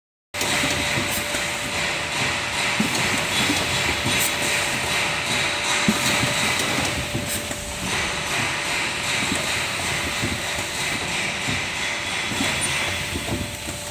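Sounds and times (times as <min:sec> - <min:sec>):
machine clattering clicks and knocks: 0:00.4 - 0:13.9.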